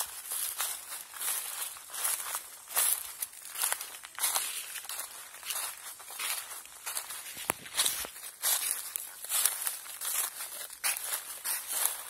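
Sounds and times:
footsteps crunching through dry leaves: 0.0s - 12.0s.

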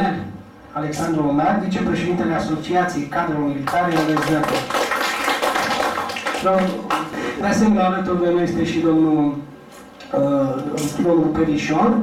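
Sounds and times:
audience applause: 3.7s - 7.2s.

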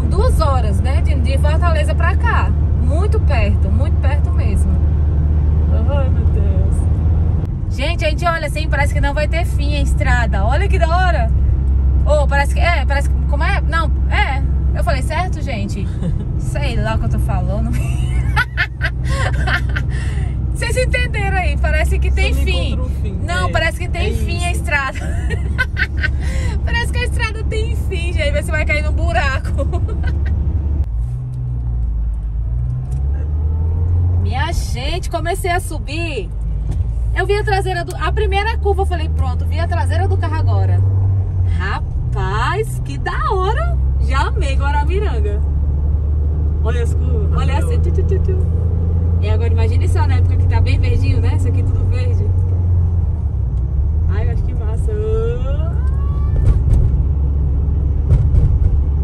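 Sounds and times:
woman's voice: 0.0s - 4.8s, 5.7s - 6.9s, 7.7s - 11.4s, 12.0s - 30.3s, 34.2s - 36.3s, 37.2s - 40.8s, 41.5s - 45.4s, 47.3s - 48.5s, 49.2s - 52.4s
car engine and road hum: 0.0s - 59.0s.

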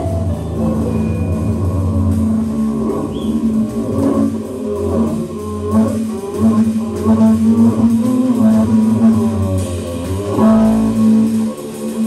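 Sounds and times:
bowed double bass: 0.0s - 12.0s
electric guitar lines: 0.0s - 12.0s
light drums: 0.0s - 12.0s.

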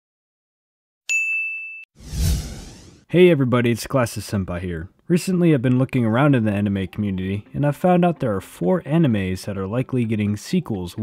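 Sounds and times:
high bright ding: 1.1s - 1.9s.

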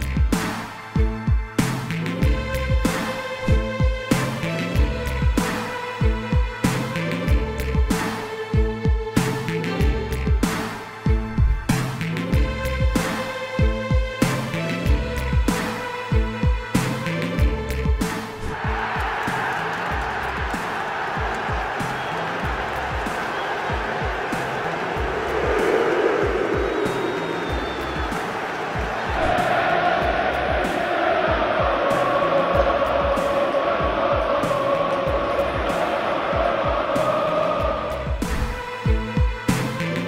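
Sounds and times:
stadium crowd noise: 18.4s - 38.5s
crowd singing a chant: 23.3s - 38.5s.

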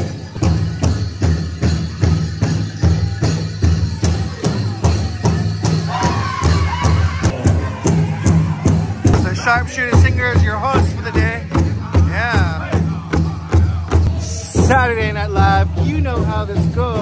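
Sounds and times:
large drum steady beat: 0.0s - 17.0s
singers' voices: 2.8s - 17.0s.

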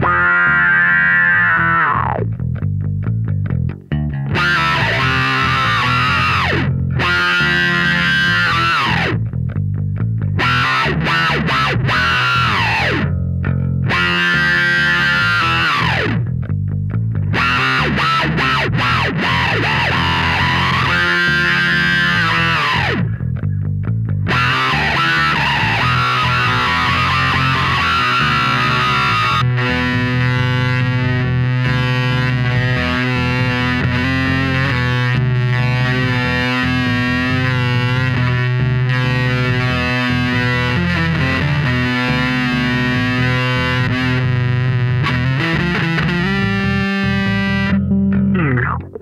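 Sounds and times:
distorted electric bass: 0.0s - 49.0s.

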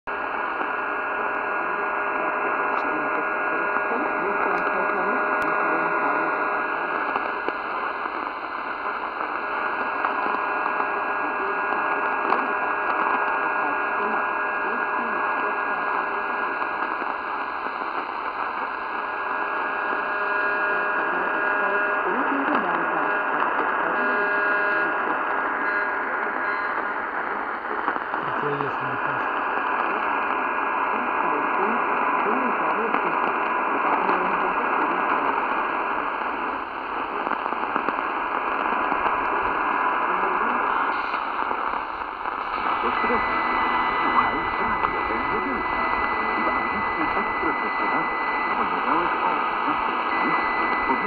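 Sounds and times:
radio static hiss: 0.1s - 51.0s
faint steady whistle tones: 42.6s - 51.0s.

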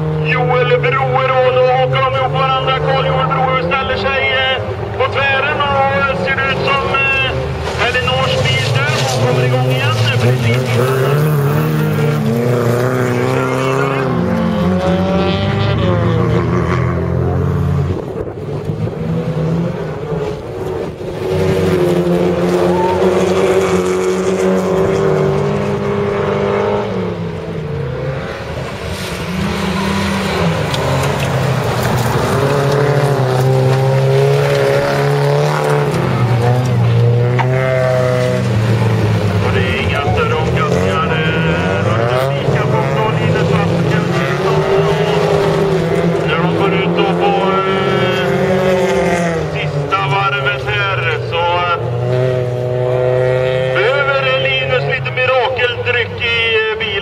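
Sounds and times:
race car engines revving: 0.0s - 57.0s.

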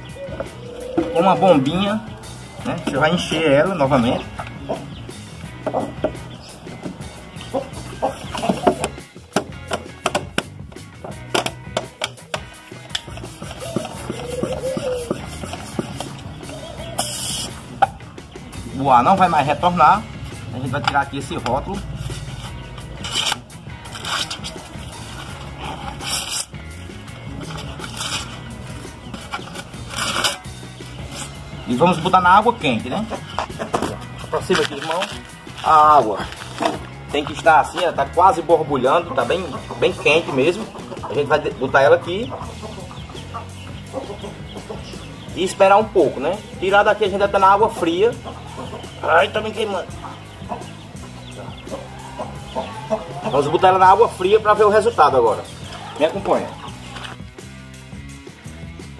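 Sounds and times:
chickens clucking: 0.0s - 57.8s
background music: 0.0s - 58.9s
steady low drone: 0.0s - 58.9s
plastic label ripping: 34.5s - 36.9s.

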